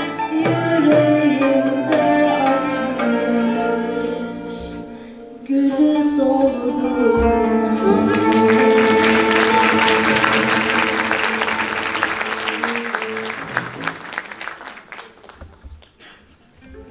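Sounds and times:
classical ensemble with violin cello kanun: 0.0 - 4.8, 5.8 - 13.9
applause: 8.0 - 16.2.

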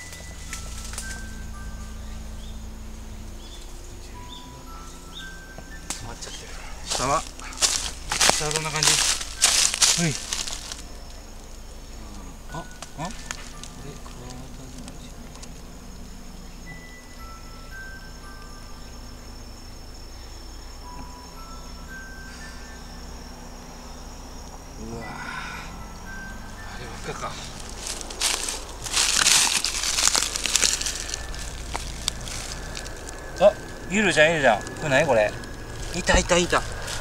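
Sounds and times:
dry bark and leaves rustling: 0.0 - 23.8, 26.1 - 37.0
faint high-pitched drone: 0.0 - 37.0.

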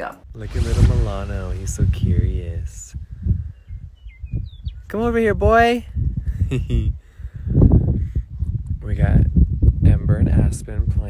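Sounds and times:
wind buffeting microphone: 0.3 - 11.0
faint bird chirps: 3.4 - 4.9.

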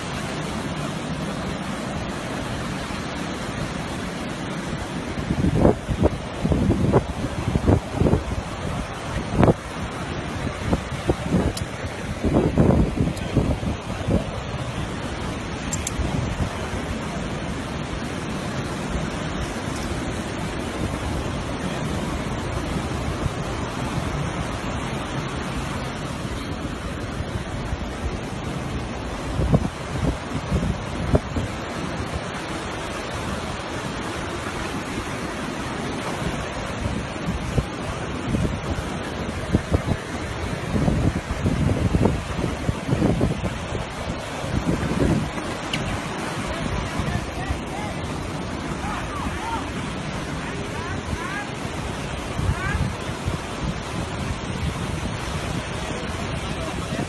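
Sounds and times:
surf breaking on beach: 0.0 - 57.0
wind buffeting microphone: 0.0 - 57.0.

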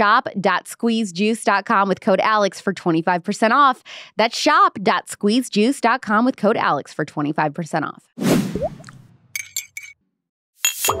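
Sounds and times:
teaspoon clinking on teacup: 9.4 - 10.0, 10.6 - 11.0.

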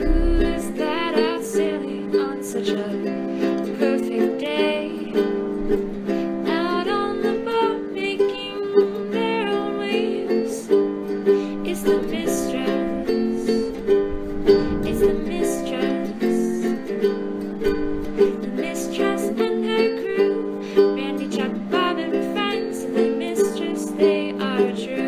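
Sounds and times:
plucked string music: 0.0 - 25.0.

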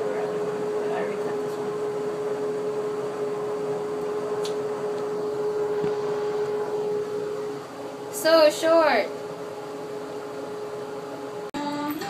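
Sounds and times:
fan humming: 0.0 - 12.0.

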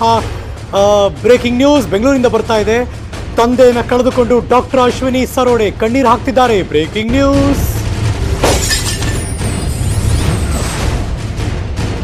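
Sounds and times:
glass shattering crash: 8.4 - 10.7.

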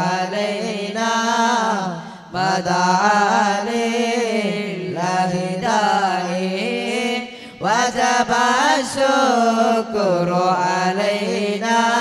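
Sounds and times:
person chanting devotional song: 0.0 - 12.0.

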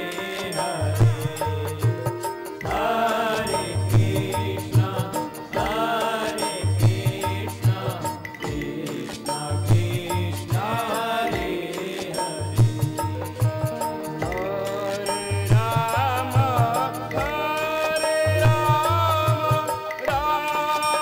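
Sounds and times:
low drum beat: 0.0 - 20.5
devotional chanting: 0.0 - 21.0
harmonium tones: 0.0 - 21.0.

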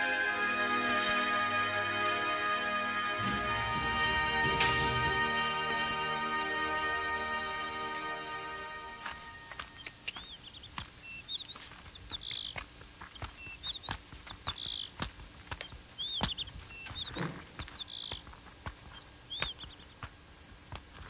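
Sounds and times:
songbird chirping: 0.0 - 21.0
horse hooves on dirt: 2.9 - 6.2, 9.0 - 21.0
boots walking on hard dirt: 3.1 - 5.5.

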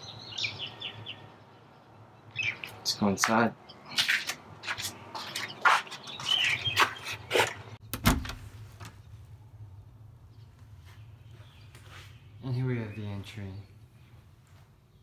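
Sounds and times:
heavy door lock clunk: 7.9 - 8.4.

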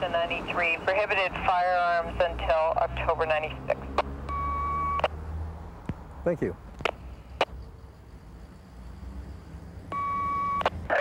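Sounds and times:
steady radio beep: 4.3 - 5.1, 9.9 - 11.0.

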